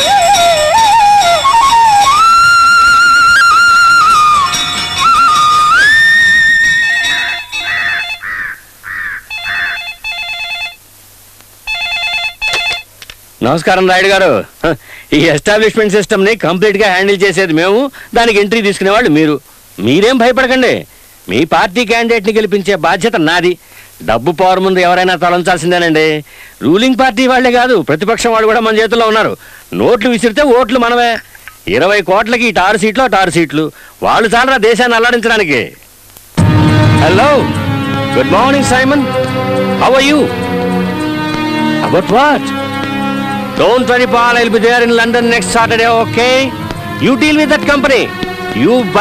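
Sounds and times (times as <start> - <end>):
telephone ringer trilling: 6.9 - 8.6, 9.3 - 10.8, 11.7 - 12.9
person speaking quickly: 43.6 - 49.0.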